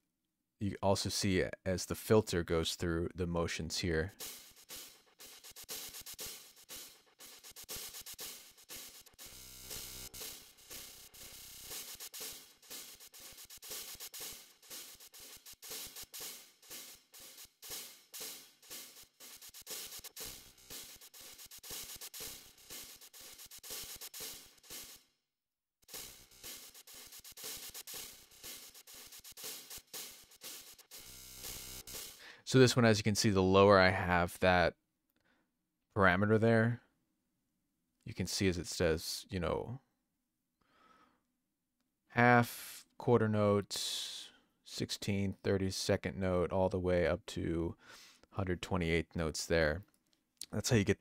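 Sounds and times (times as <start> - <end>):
drum loop with delay effect: 4.1 - 25.0, 25.9 - 32.3.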